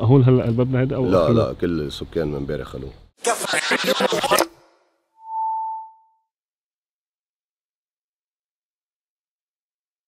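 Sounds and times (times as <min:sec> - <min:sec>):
steady electronic tone: 0:03.8 - 0:06.2.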